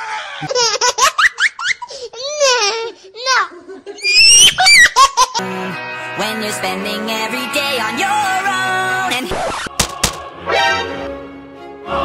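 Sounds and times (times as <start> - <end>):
high-pitched squealing laughter: 3.5 - 5.4
music: 5.4 - 12.0.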